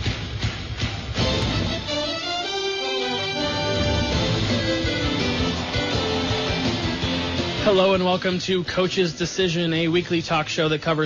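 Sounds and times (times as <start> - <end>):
instrumental theme music: 0.2 - 9.7.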